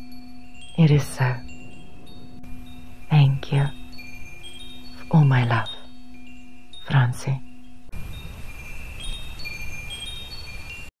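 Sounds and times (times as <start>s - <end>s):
chimes ringing: 0.0s - 10.9s.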